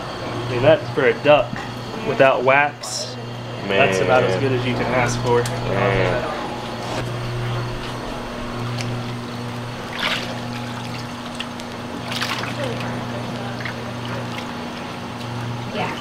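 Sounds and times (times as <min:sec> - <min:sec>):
low hum: 0:00.0 - 0:16.0
water splashing and dripping: 0:09.8 - 0:14.6.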